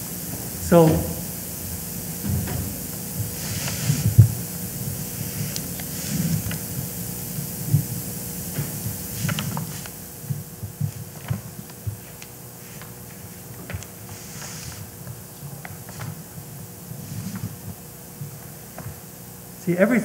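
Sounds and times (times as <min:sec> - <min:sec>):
parchment rustling: 0:02.1 - 0:16.4.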